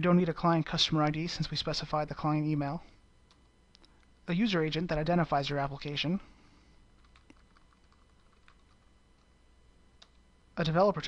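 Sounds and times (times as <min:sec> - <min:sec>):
computer keyboard typing: 0:07.0 - 0:09.3, 0:10.0 - 0:10.2.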